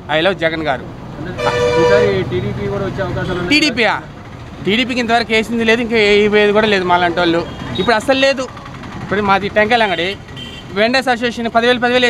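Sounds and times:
vehicle horn honking: 0:01.4 - 0:02.3, 0:09.9 - 0:10.8.

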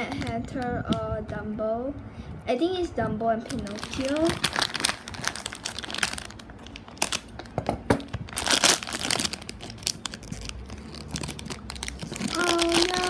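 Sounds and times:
foil packet crinkling: 0:03.5 - 0:13.0.

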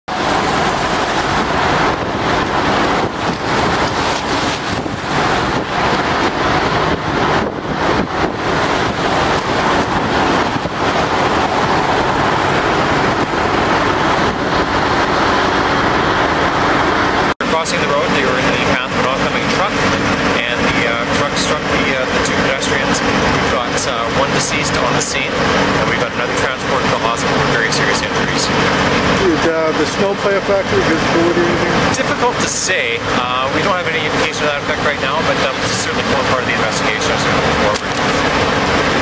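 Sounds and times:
vehicles passing on wet road: 0:00.1 - 0:39.0.

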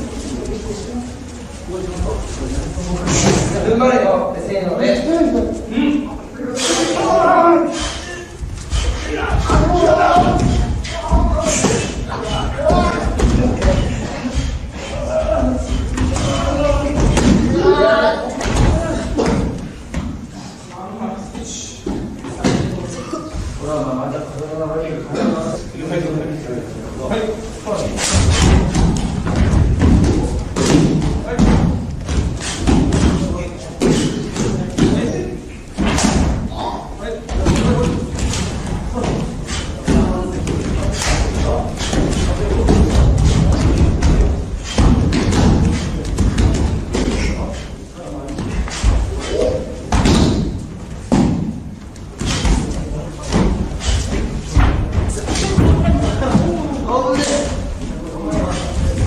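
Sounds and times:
voices: 0:00.0 - 0:59.0
men shouting: 0:06.6 - 0:19.2.

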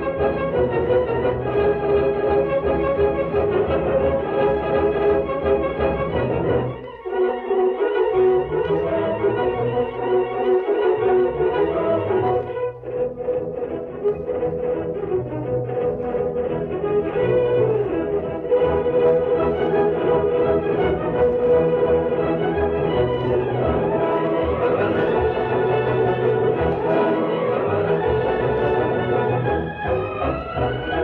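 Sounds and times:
orchestral music: 0:00.0 - 0:31.0.

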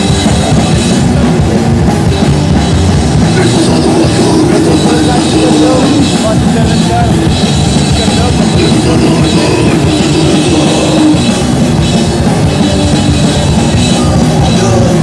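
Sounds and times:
punk band playing live: 0:00.0 - 0:15.0.

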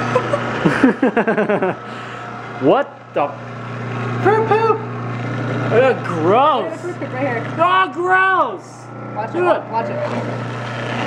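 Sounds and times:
juicer motor humming: 0:00.0 - 0:11.0.

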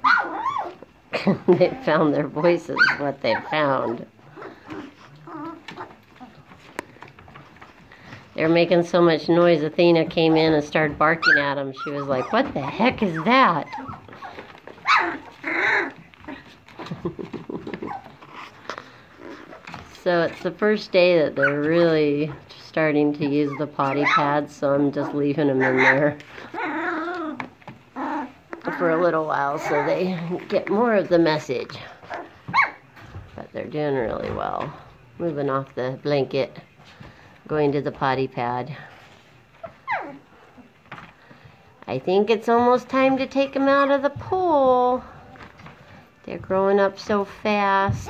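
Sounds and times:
puppy crying: 0:00.0 - 0:00.9, 0:01.6 - 0:06.4, 0:11.1 - 0:17.0, 0:17.6 - 0:18.6, 0:23.4 - 0:24.4, 0:25.0 - 0:30.2, 0:32.0 - 0:32.8, 0:39.6 - 0:40.3
puppies whimpering and squeaking: 0:00.0 - 0:01.0, 0:01.6 - 0:07.8, 0:10.2 - 0:20.0, 0:21.2 - 0:21.9, 0:23.2 - 0:31.3, 0:31.9 - 0:33.1, 0:38.9 - 0:40.7
puppy grunts: 0:00.2 - 0:06.5, 0:13.0 - 0:19.8, 0:25.0 - 0:30.2.

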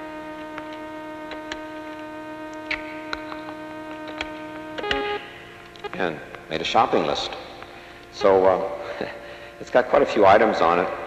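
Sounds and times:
steady hum with overtones: 0:00.0 - 0:11.0.

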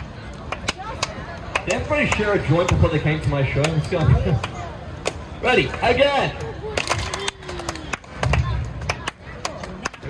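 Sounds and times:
crowd clapping: 0:06.7 - 0:10.0.

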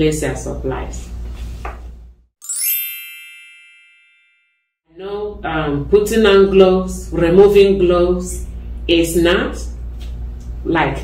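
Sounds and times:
bright bell-like chime: 0:02.4 - 0:04.7.

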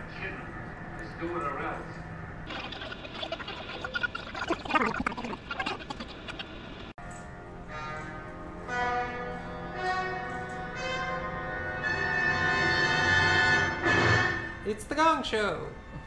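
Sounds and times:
orchestral chords: 0:07.3 - 0:15.6.

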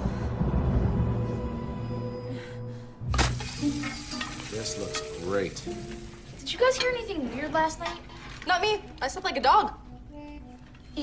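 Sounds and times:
sausages sizzling: 0:03.1 - 0:07.0.

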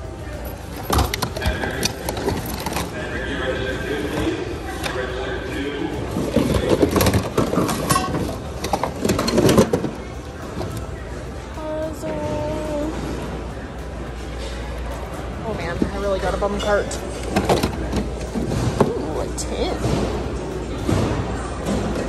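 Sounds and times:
household items clattering: 0:00.7 - 0:03.4, 0:06.1 - 0:10.9, 0:15.7 - 0:20.2.

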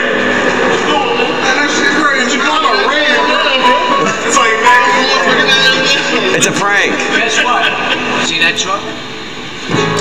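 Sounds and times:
voices talking and exclaiming: 0:00.6 - 0:09.1.

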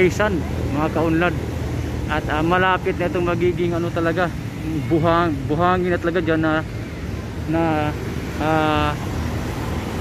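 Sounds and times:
man saying uh: 0:07.5 - 0:09.0.

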